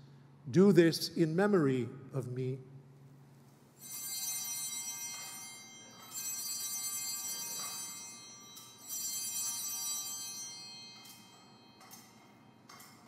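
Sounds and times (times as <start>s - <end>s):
small bells ringing: 3.8s - 13.0s.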